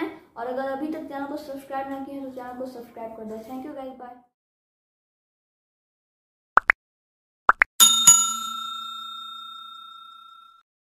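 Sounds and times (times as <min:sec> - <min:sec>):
bell-like ding: 0:07.8 - 0:10.6.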